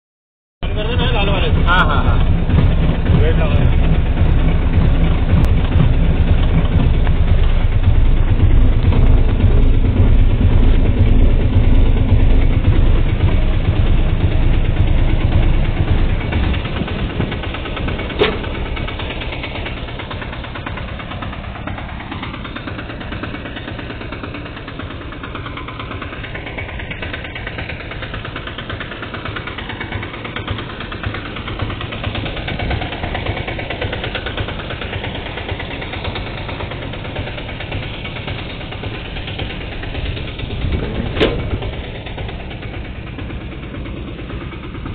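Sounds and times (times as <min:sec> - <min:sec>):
three-wheeler engine idling: 0:00.6 - 0:44.9
sharp knock: 0:18.1 - 0:18.7.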